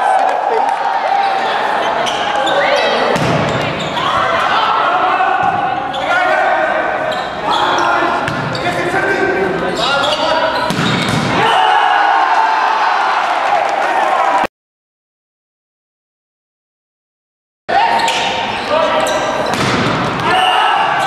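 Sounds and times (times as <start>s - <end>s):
players and spectators shouting: 0.0s - 14.5s, 20.1s - 21.0s
volleyball struck with sharp thuds: 3.1s - 3.8s, 10.7s - 11.5s, 19.4s - 20.4s.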